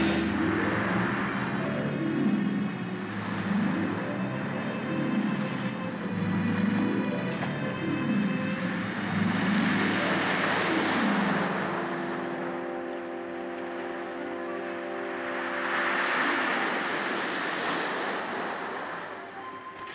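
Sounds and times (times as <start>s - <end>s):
orchestral film score: 0.0s - 19.9s
surf washing against rocks: 0.0s - 19.9s.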